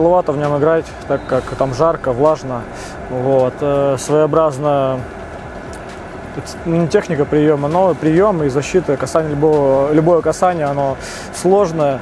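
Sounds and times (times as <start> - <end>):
man talking: 0.0 - 5.1, 6.4 - 12.0
bus cabin rumble and hiss: 0.0 - 12.0.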